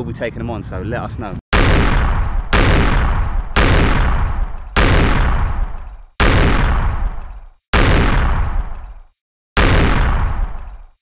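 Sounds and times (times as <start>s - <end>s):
heavy boom sound effects: 1.6s - 9.0s, 9.6s - 10.9s.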